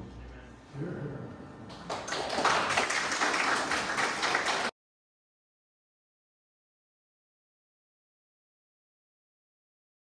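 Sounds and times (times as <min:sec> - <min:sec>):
congregation applauding: 0:01.7 - 0:04.7.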